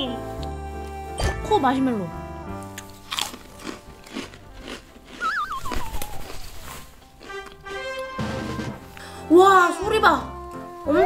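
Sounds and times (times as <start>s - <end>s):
background music: 0.0s - 11.0s
crunchy snack being chewed: 2.7s - 8.0s
wavering high tone gliding down: 5.2s - 6.7s.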